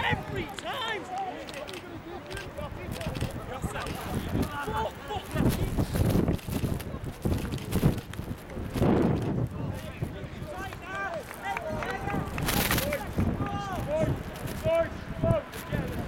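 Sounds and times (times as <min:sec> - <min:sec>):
wind buffeting microphone: 0:02.3 - 0:16.0.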